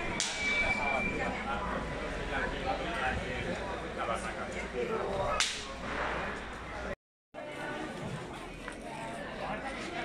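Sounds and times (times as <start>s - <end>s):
street crowd chatter: 0.0s - 10.0s.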